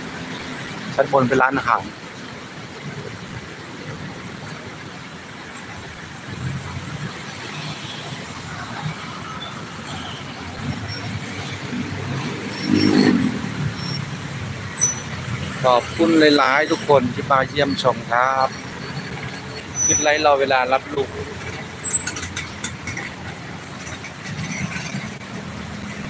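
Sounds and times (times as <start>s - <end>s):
loud vehicle engine: 0.0s - 4.4s, 5.6s - 26.0s
city traffic engine and tyre noise: 0.0s - 26.0s.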